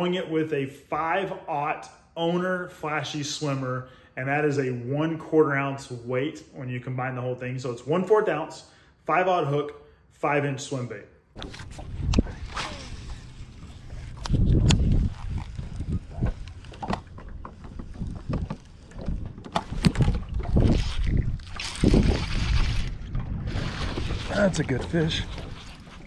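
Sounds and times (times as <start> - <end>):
wind buffeting microphone: 11.4 - 26.0.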